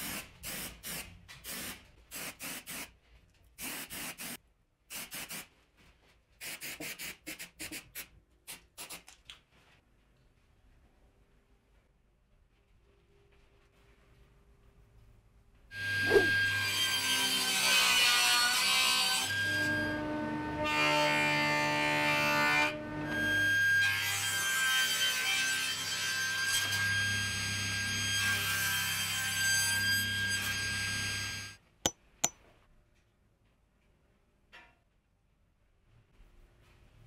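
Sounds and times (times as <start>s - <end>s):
table saw cutting wood: 15.8s - 23.4s.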